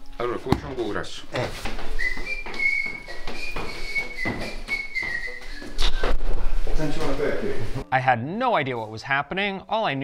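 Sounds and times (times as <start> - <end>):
person whistling a tune: 1.9 - 6.4.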